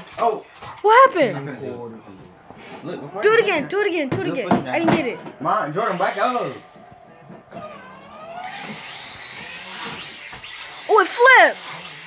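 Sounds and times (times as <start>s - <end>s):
toy drone propellers whirring: 7.8s - 12.0s.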